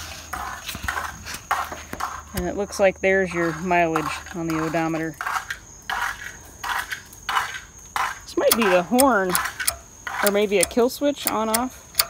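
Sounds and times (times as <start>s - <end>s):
metallic switch clicking: 8.5s - 12.0s.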